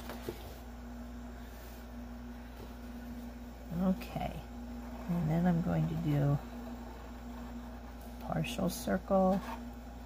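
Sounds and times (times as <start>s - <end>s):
steady low hum: 0.0s - 10.0s
woman's voice: 3.7s - 6.5s, 8.2s - 9.6s.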